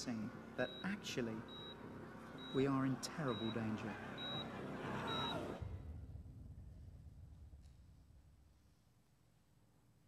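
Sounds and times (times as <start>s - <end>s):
film soundtrack through speakers: 0.0s - 10.0s
low rumble: 5.6s - 8.7s.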